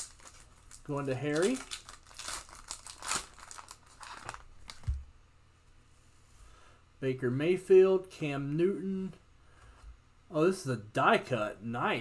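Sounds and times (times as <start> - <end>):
foil wrapper crinkling and tearing: 0.0 - 5.0.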